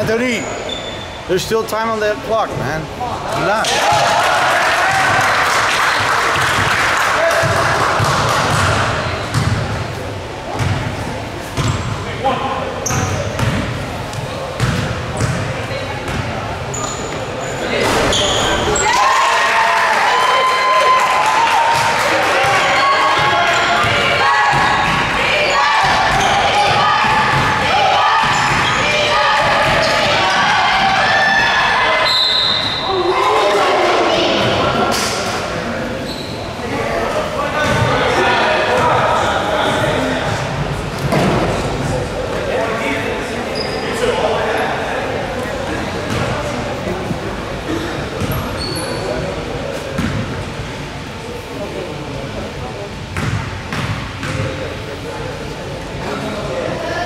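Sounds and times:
echoing voices chatter and shouting: 0:00.0 - 0:57.0.

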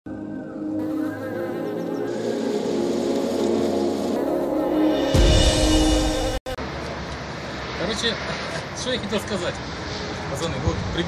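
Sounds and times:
bees buzzing: 0:00.1 - 0:06.4
background music: 0:00.1 - 0:06.6.

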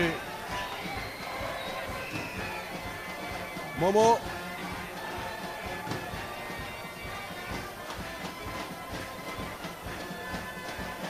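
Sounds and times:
drumbeat: 0:00.0 - 0:11.0.

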